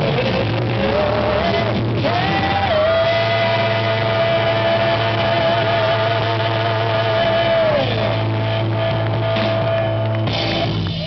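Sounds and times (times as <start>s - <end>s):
rock band holding high note: 0.0s - 11.0s.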